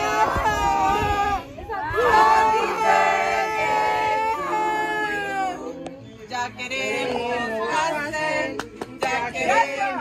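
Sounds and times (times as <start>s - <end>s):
group singing a birthday song: 0.0s - 10.0s.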